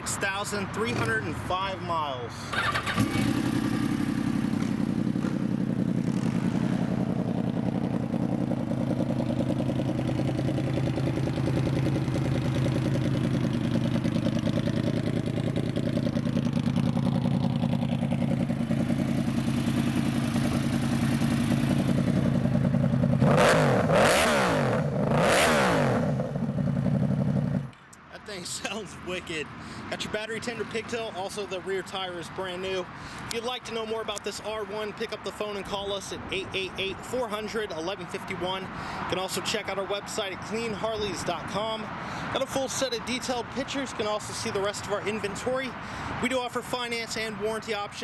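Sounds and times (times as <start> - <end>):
motorcycle engine idling and revving: 2.5 - 27.8.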